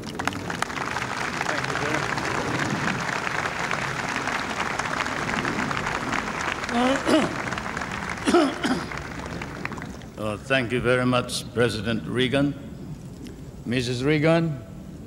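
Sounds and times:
crowd applauding: 0.0s - 10.2s.

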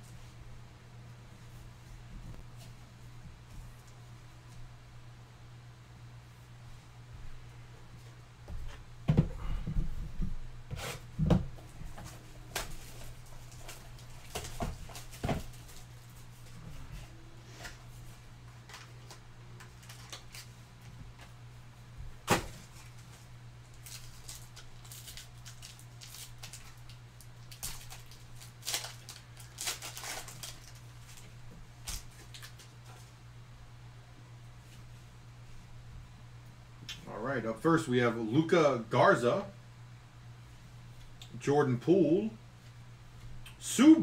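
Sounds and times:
steady low hum: 0.0s - 44.0s
card stock knocks and rustles: 11.1s - 15.9s, 22.2s - 23.1s.

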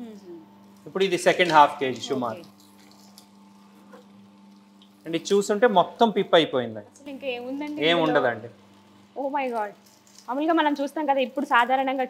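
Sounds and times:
juice machine humming: 0.0s - 12.0s.

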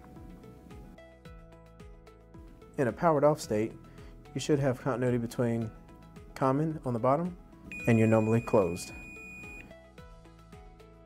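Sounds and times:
soft background music: 0.0s - 11.0s
multimeter continuity beep: 7.7s - 9.7s.

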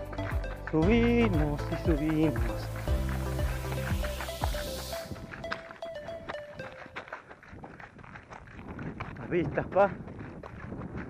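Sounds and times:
running footsteps on gravel: 0.0s - 11.0s.

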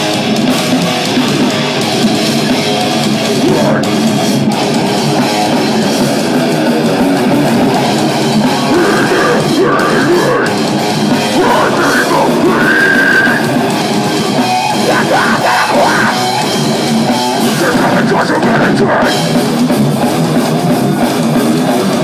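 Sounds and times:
distorted electric guitars: 0.0s - 22.0s
drum kit: 0.0s - 22.0s.

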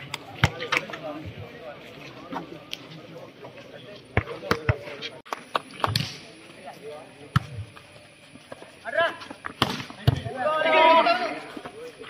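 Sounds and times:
volleyball bouncing on dirt: 0.0s - 1.0s, 4.1s - 6.2s, 7.3s - 7.9s, 9.3s - 10.4s.

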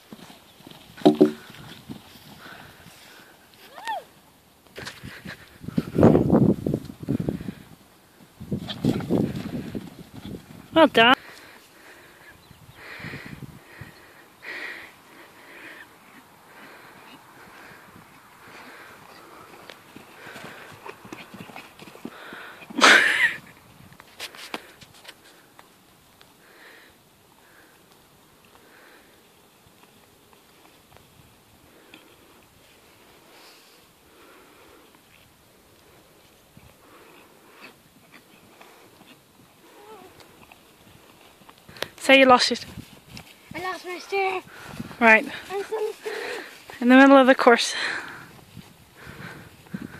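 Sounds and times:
soft hoofbeats on grass: 0.0s - 26.5s, 27.1s - 49.9s.

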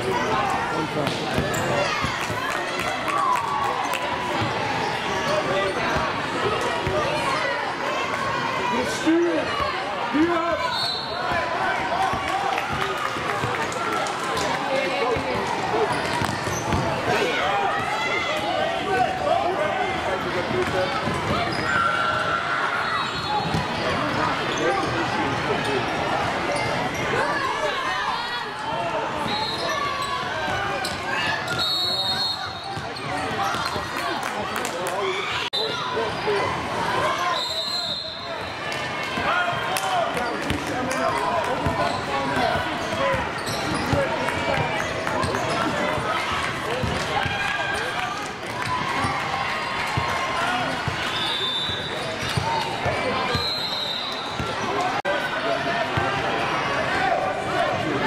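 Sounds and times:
people talking and shouting: 0.0s - 58.0s
referee whistle blasts: 10.6s - 11.2s, 31.5s - 32.7s, 37.3s - 38.4s, 53.4s - 54.2s
basketball bouncing on court: 16.0s - 17.0s.

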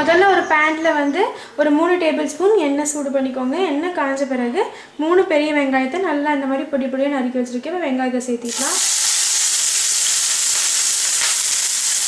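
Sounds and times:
onions sizzling in oil: 8.4s - 12.0s.

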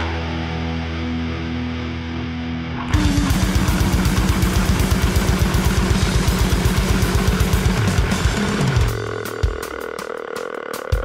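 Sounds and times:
distorted electric guitar: 0.0s - 11.0s
fast kick drum: 3.0s - 10.1s.

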